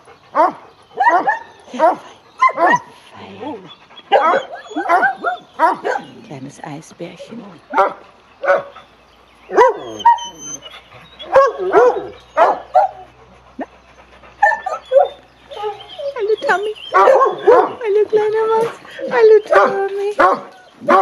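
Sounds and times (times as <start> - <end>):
dogs whining: 0.0 - 6.2, 7.3 - 21.0
dogs barking and yelping: 0.0 - 6.3, 7.1 - 21.0.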